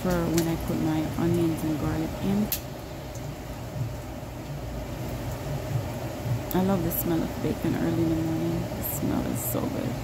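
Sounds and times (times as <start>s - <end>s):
low room hum and hiss: 0.0s - 10.0s.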